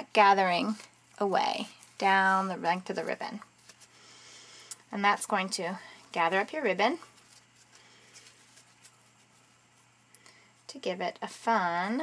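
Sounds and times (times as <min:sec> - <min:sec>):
fabric rustling: 0:00.0 - 0:04.0, 0:05.0 - 0:10.1
faint room hum: 0:00.0 - 0:12.0.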